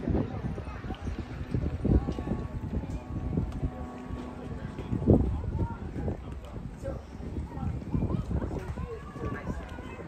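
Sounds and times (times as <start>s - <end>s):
people talking indistinctly: 0.0s - 10.0s
wind rumbling on microphone: 0.0s - 10.0s.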